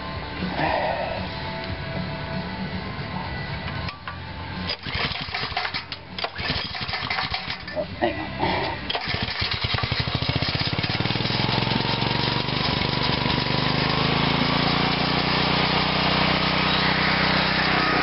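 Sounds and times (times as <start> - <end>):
pull-start cord: 3.8 - 7.9, 8.8 - 11.4
small engine sputtering and running: 4.7 - 7.9, 8.6 - 18.0.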